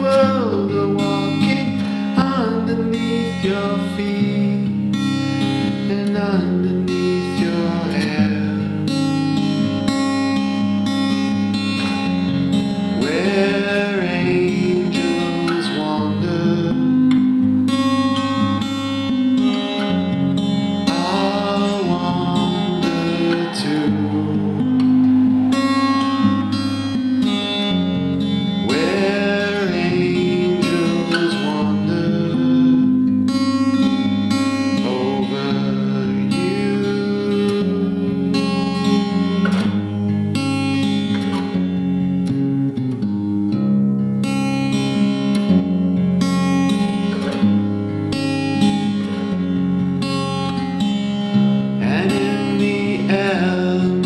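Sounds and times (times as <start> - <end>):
live guitar-led song: 0.0 - 54.0.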